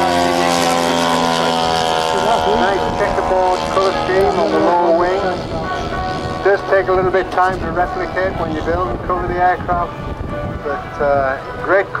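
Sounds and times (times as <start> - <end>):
model airplane engine droning: 0.0 - 12.0.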